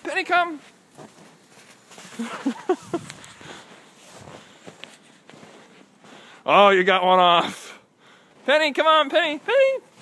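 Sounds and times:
footsteps in snow: 0.0 - 7.5, 8.1 - 10.0.

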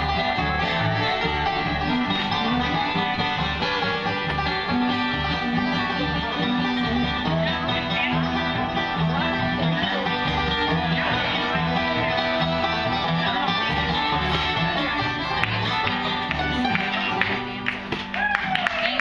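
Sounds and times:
acoustic guitar strumming: 0.0 - 18.2
plucked upright bass: 0.0 - 19.0.

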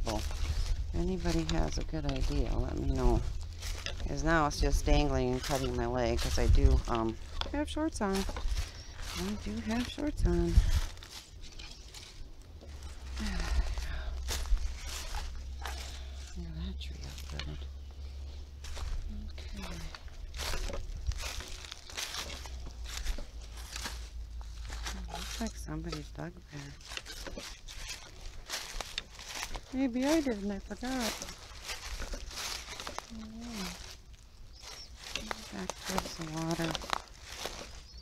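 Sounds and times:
footsteps crunching dry leaves: 0.0 - 38.0
low rumble on microphone: 0.0 - 38.0.

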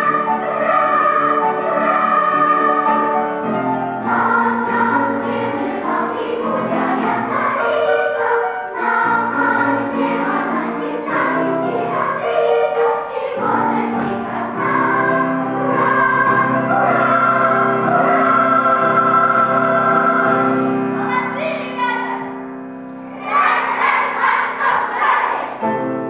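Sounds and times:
children's choir singing: 0.0 - 22.4, 23.1 - 26.0.

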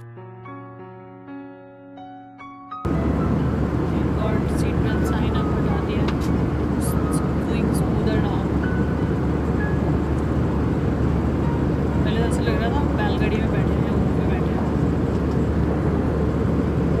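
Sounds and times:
airliner cabin engine rush: 2.9 - 17.0.

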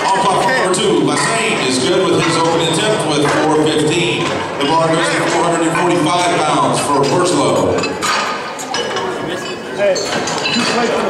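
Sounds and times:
indistinct voices: 0.0 - 11.0
weight plates clinking: 0.1 - 11.0.

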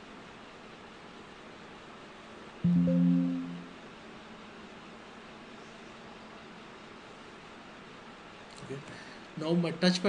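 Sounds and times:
low room tone hiss: 0.0 - 10.0
faint low hum: 2.6 - 4.0.

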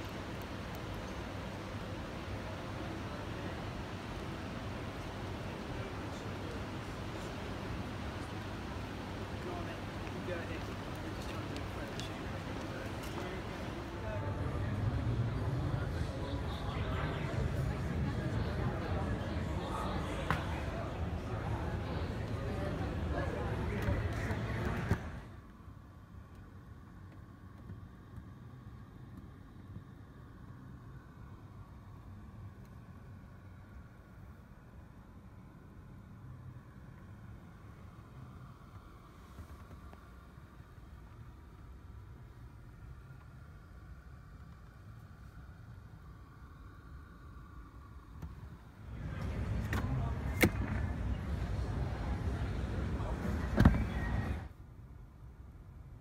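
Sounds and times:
crowd chatter: 0.0 - 25.5, 42.3 - 54.6.

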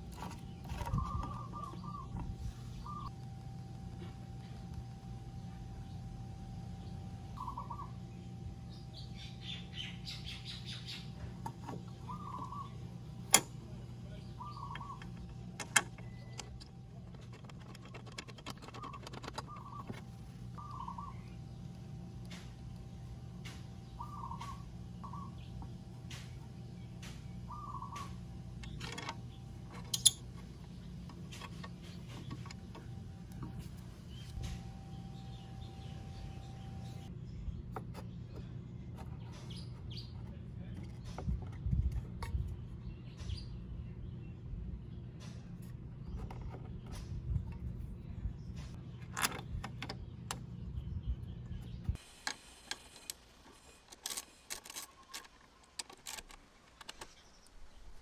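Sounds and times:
steady low hum: 0.0 - 58.0
bird warbling calls: 0.1 - 3.1, 7.3 - 12.9, 14.1 - 15.4, 18.4 - 21.5, 23.8 - 25.6, 27.4 - 28.8.

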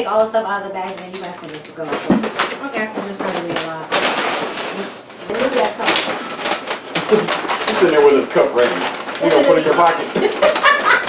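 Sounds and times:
people talking: 0.0 - 3.9, 5.3 - 6.1, 7.0 - 11.0
paper bags rustling: 0.8 - 11.0.

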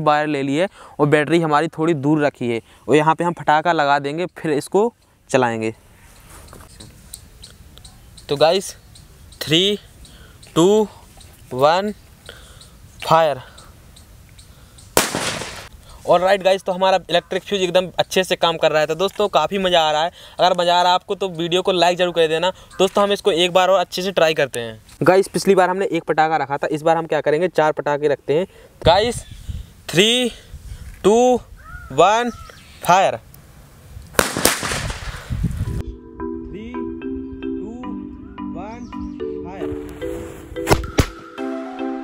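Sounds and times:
firecracker bang: 15.0 - 15.7, 34.2 - 35.4
background music: 35.8 - 42.0.

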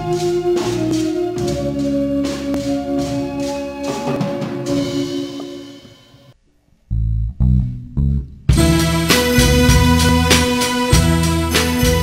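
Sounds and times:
electric bass guitar notes: 0.0 - 6.3, 6.9 - 12.0
band music: 0.0 - 6.4, 7.4 - 12.0.

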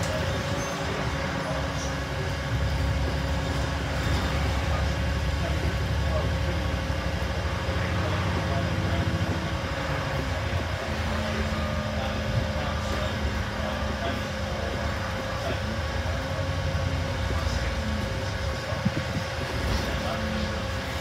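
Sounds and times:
bus engine drone: 0.0 - 21.0
road noise: 0.0 - 21.0.

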